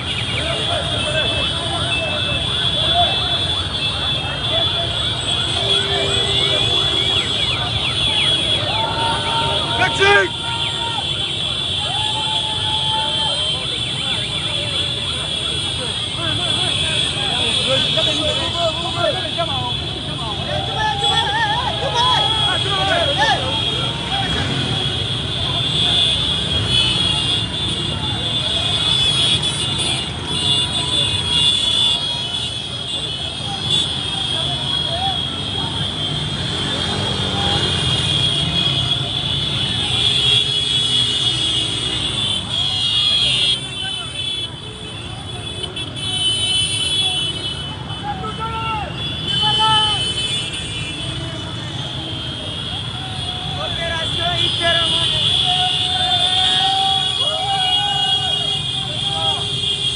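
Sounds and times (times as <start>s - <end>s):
people shouting: 8.4s - 13.7s, 15.8s - 24.7s, 52.8s - 59.5s
motorcycle and car engines: 23.0s - 28.7s, 35.3s - 42.5s.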